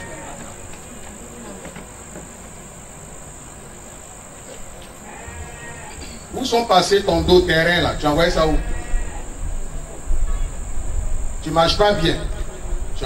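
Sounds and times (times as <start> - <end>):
faint wavering voice sounds: 0.0 - 2.1
crickets chirring: 0.0 - 13.0.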